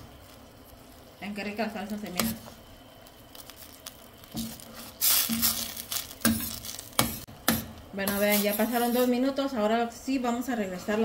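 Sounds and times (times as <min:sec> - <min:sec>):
sauce sizzling and bubbling: 0:00.0 - 0:09.1
spoon scraping a pan: 0:04.4 - 0:09.2.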